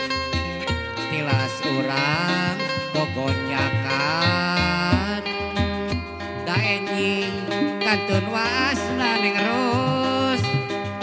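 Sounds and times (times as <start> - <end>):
person singing: 0.0 - 5.6, 6.4 - 10.8
zither being plucked: 0.0 - 11.0.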